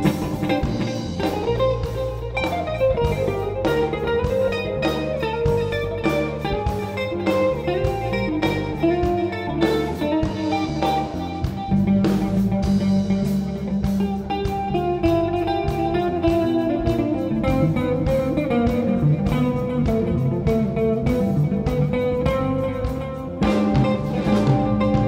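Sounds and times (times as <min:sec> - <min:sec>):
drum kit keeping time: 0:00.0 - 0:25.0
electric bass line: 0:00.0 - 0:25.0
electric guitar melody: 0:00.0 - 0:25.0.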